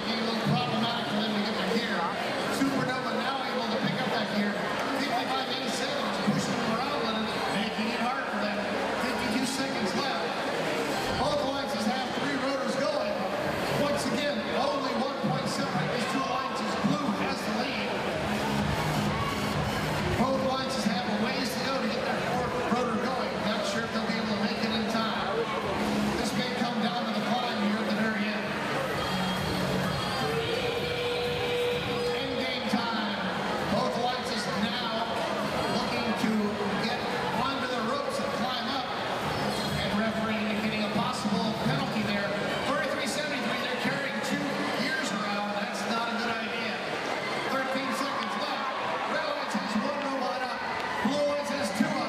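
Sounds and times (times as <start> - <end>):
crowd chatter: 0.0 - 52.0
music over public address: 0.0 - 52.0.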